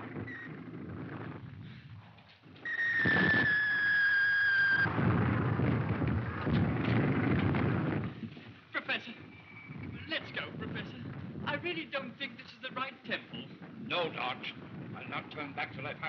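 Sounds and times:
shrill whistle: 2.7s - 4.9s
loud low rumbling din: 4.8s - 8.2s.

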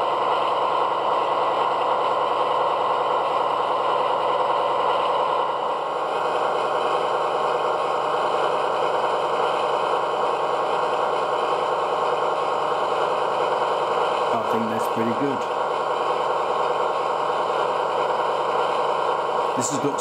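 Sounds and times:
diesel locomotive engine sound: 0.0s - 20.0s.

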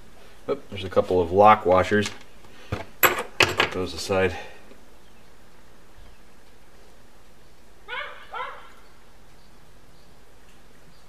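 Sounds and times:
animal yelps: 7.9s - 8.8s.

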